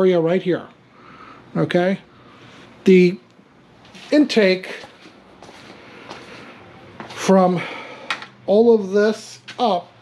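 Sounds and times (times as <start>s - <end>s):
soft footsteps on concrete: 3.8s - 7.3s, 9.4s - 9.6s.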